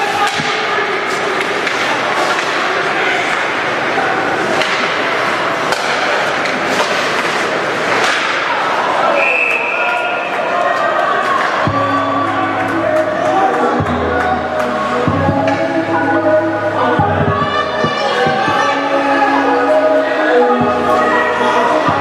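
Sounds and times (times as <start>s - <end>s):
skates and crowd noise: 0.0s - 22.0s
sticks and puck cracking: 0.1s - 3.5s, 4.4s - 8.8s
referee whistle: 9.1s - 10.0s.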